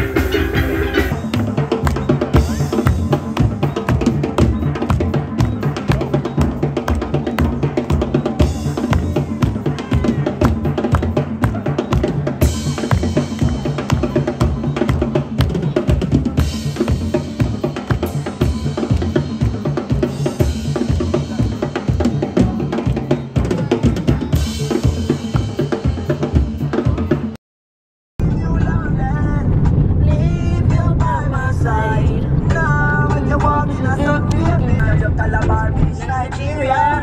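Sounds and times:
music with fast drum beat: 0.0 - 27.4.

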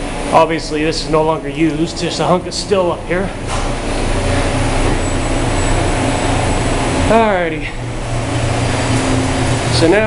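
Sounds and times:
air handler blower rushing: 0.0 - 10.0
low machinery hum: 0.0 - 10.0.

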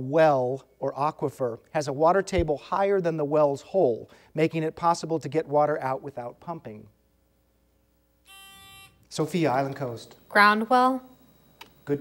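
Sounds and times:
electronic quiz buzzer tone: 8.2 - 9.0, 9.8 - 12.0.

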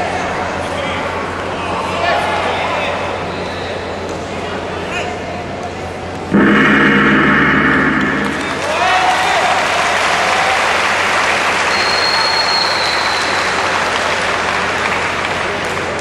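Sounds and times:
loud electronic buzzer: 6.3 - 8.9.

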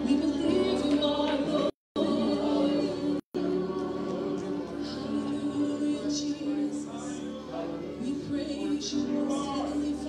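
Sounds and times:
voices singing worship music: 0.0 - 10.0.

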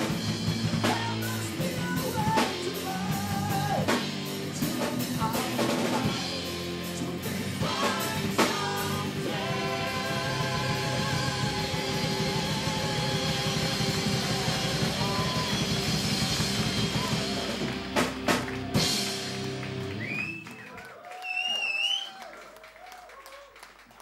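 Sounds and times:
metal band playing live: 0.0 - 20.0
crowd cheering: 7.7 - 24.0
person whistling: 19.9 - 22.2.

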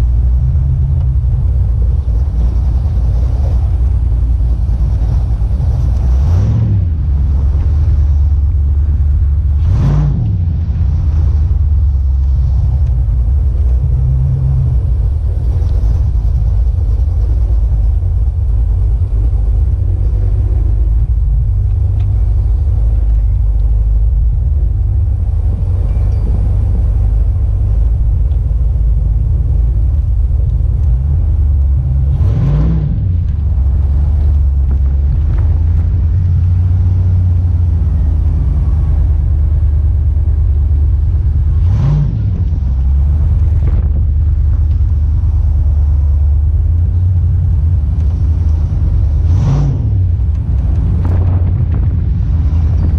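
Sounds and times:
engine revving: 0.0 - 52.9
truck engine rumble: 0.0 - 52.9.

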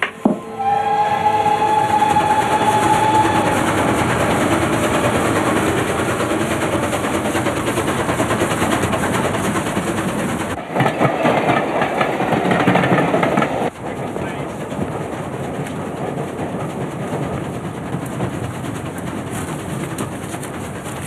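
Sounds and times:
steam train running at speed: 0.0 - 21.0.

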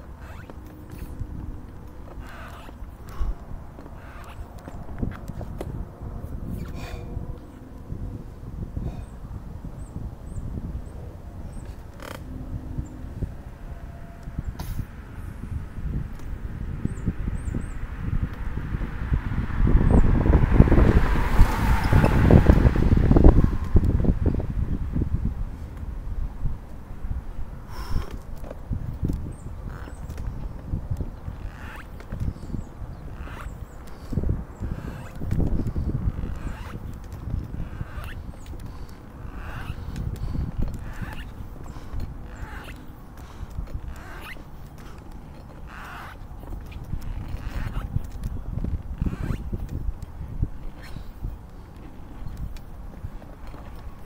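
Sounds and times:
wheelchair rolling on concrete: 0.0 - 5.8, 28.2 - 54.0
car passing: 10.2 - 26.1, 31.4 - 47.8.

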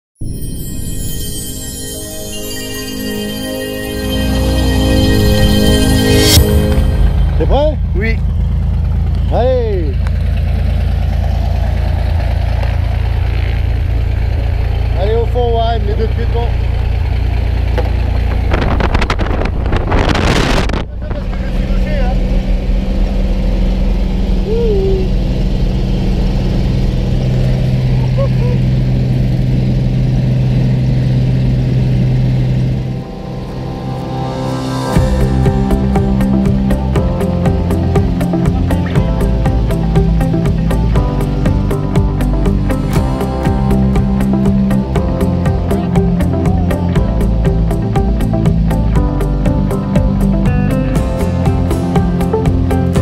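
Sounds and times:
plane engine idling: 1.6 - 53.0
wind on microphone: 17.8 - 21.5.

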